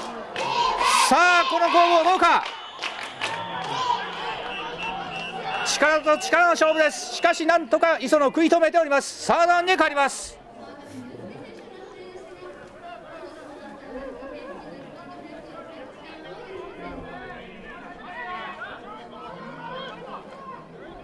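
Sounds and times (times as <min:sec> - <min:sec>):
faint voices chattering and calling: 0:00.0 - 0:21.0.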